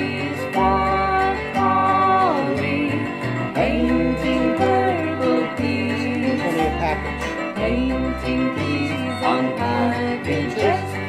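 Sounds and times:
acoustic guitar: 0:00.0 - 0:11.0
children's song: 0:00.0 - 0:11.0
person singing melody: 0:00.0 - 0:11.0.

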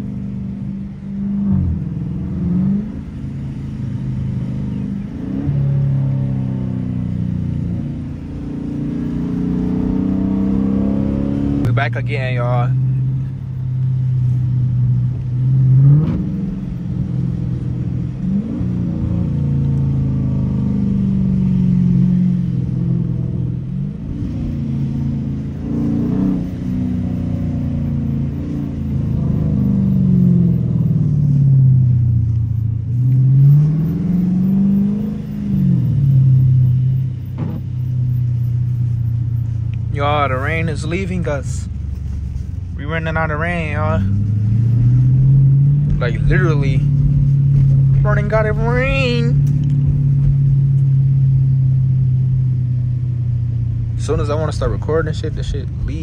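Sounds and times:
car engine revving inside cabin: 0:00.0 - 0:56.0.

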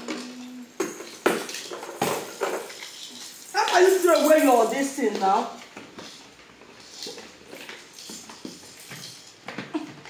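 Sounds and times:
plastic items clicking and knocking: 0:00.0 - 0:10.0.

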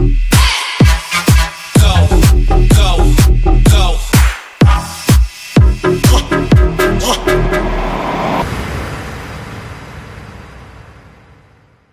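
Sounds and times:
deep house music: 0:00.0 - 0:08.4.

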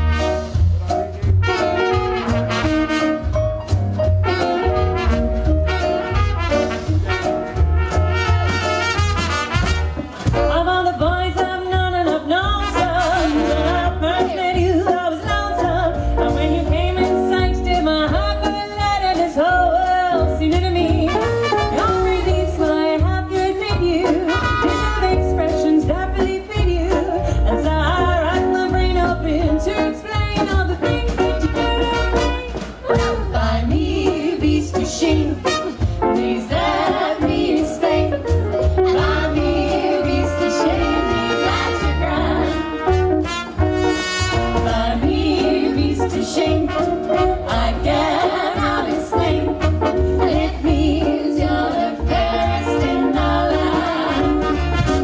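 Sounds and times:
trumpet playing: 0:00.0 - 0:00.6, 0:01.4 - 0:10.7, 0:12.6 - 0:14.2, 0:21.1 - 0:22.2, 0:24.2 - 0:25.4, 0:31.2 - 0:33.4, 0:35.4 - 0:36.3, 0:38.8 - 0:44.9, 0:46.6 - 0:47.8, 0:49.4 - 0:50.4, 0:53.6 - 0:55.0
swing band with brass: 0:00.0 - 0:55.0
women singing in harmony: 0:10.8 - 0:21.2, 0:33.0 - 0:42.8, 0:44.6 - 0:54.7.

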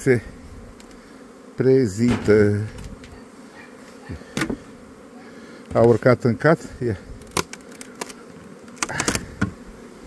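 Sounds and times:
bees buzzing: 0:00.0 - 0:10.0
hive box clicks and knocks: 0:04.4 - 0:04.6, 0:07.2 - 0:09.6.

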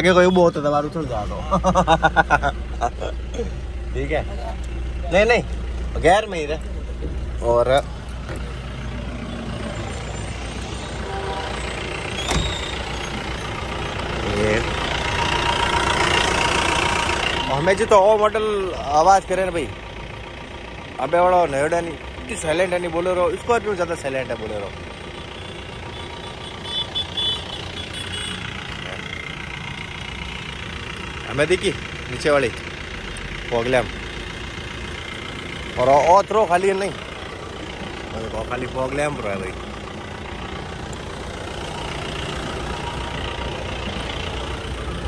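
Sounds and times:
diesel engine idling: 0:00.0 - 0:45.0.

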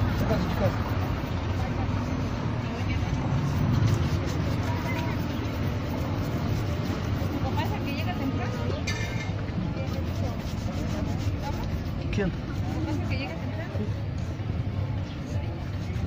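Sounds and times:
brush rubbing leather shoe: 0:00.0 - 0:08.8, 0:09.4 - 0:16.0
street traffic rumble: 0:00.0 - 0:16.0.

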